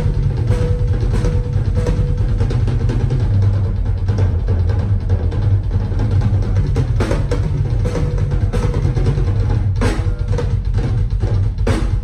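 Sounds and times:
rock drum solo: 0.0 - 12.0.

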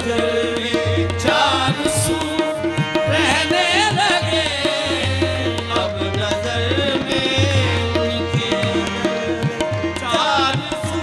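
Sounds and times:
harmonium tones: 0.0 - 11.0
tabla rhythm: 0.0 - 11.0.

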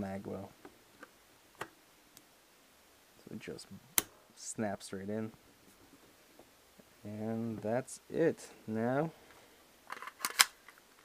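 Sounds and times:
magazine catch latching click: 9.9 - 10.7
magazine clicks and scrapes: 9.9 - 11.0.

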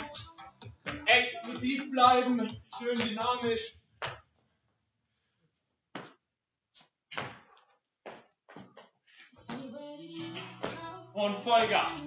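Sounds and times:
music: 0.0 - 3.6, 9.4 - 12.0.

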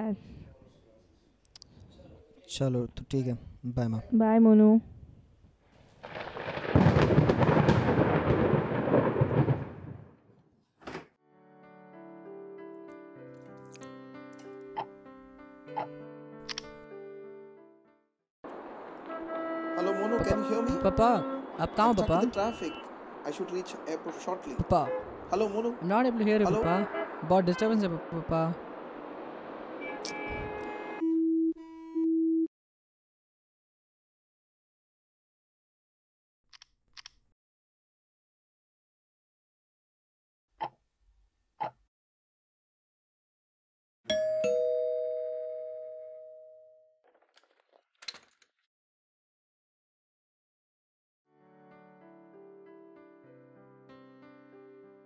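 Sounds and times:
deep rolling rumble with crackle: 6.0 - 10.2.

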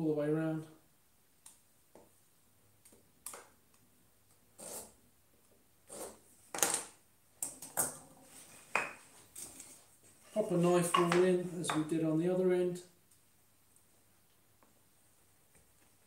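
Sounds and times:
knife scraping wood: 4.6 - 5.0, 5.9 - 6.2.

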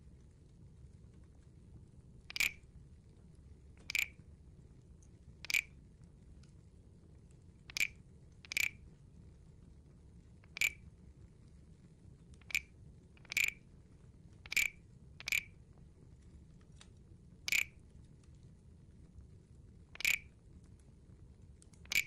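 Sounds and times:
wooden frog guiro croaks: 2.3 - 2.6, 3.9 - 4.2, 5.4 - 5.7, 7.7 - 8.8, 10.5 - 10.8, 12.4 - 13.6, 14.4 - 15.6, 17.5 - 17.8, 19.9 - 20.3.

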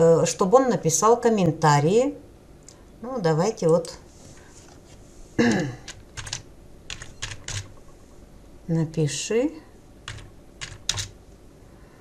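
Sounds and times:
keyboard keystrokes: 5.9 - 7.8, 10.1 - 11.2.

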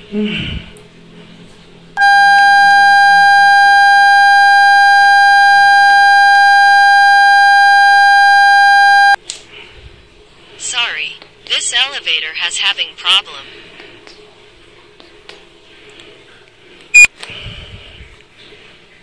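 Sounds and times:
elevator alarm buzzer: 2.0 - 9.2.

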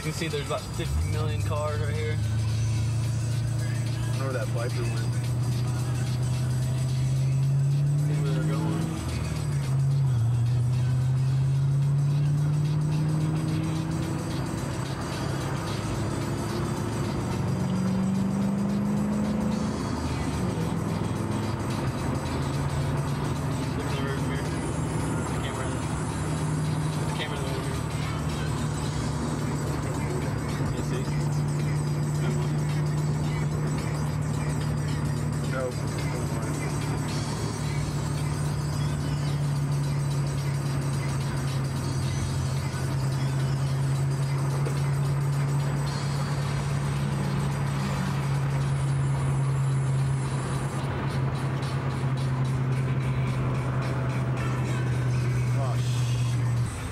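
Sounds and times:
car engine accelerating: 0.0 - 56.9.

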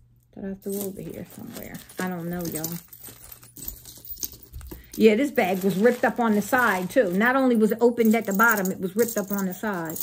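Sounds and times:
jewelry clicking and clinking: 0.6 - 10.0.

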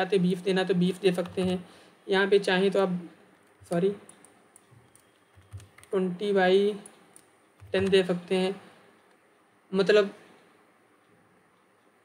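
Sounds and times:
faint keyboard keystrokes: 3.4 - 6.0.

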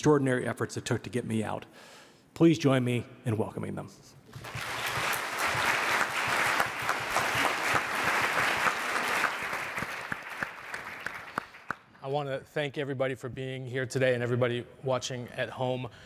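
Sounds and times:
audience applauding: 4.3 - 11.8.

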